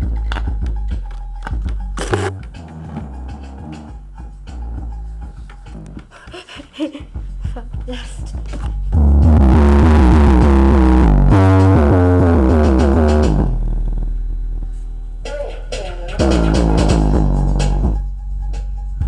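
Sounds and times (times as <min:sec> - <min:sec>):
heavy bass tones sliding downward: 0:02.1 - 0:06.0, 0:08.9 - 0:15.3, 0:16.2 - 0:18.1.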